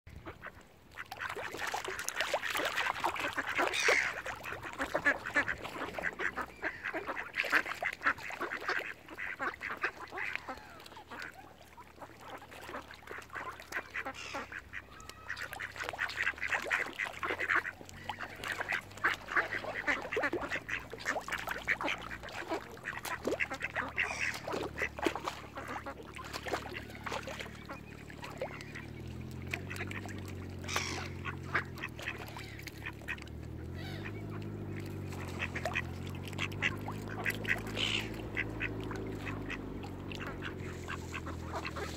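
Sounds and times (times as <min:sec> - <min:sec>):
ducks quacking: 0:00.1 - 0:41.9.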